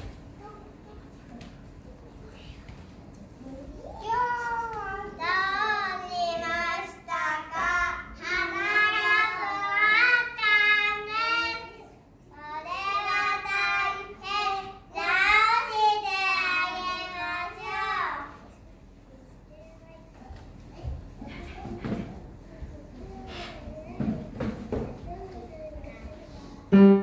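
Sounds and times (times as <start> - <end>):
young children singing: 3.8 - 18.5.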